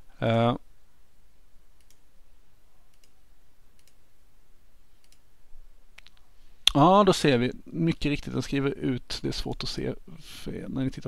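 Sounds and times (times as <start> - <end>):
low room hum: 0.0 - 11.0
computer mouse clicks: 1.8 - 2.0, 2.9 - 3.2, 3.8 - 4.0, 5.0 - 5.2.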